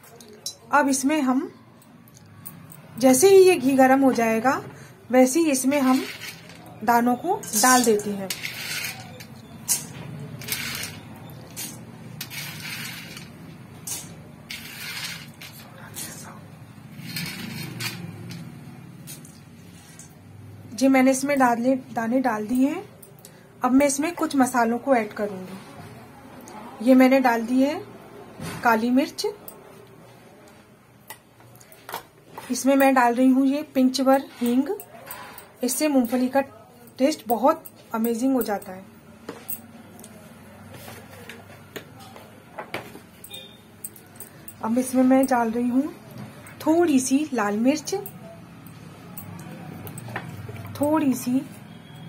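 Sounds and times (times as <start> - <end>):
nuts scraping against metal pan: 5.8 - 6.7, 7.5 - 15.7, 17.0 - 18.2
utensils clinking on metal pan: 7.4 - 11.0.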